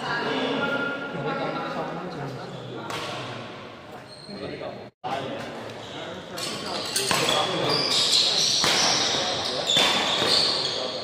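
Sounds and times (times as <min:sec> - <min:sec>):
shoes squeaking on court floor: 0:04.0 - 0:04.6, 0:05.8 - 0:11.0
rackets striking shuttlecock: 0:08.6 - 0:10.4.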